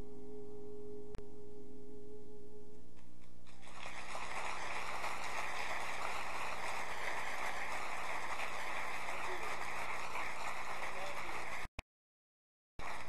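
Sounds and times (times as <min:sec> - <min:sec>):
audience applause: 0:03.5 - 0:11.7, 0:12.8 - 0:13.0.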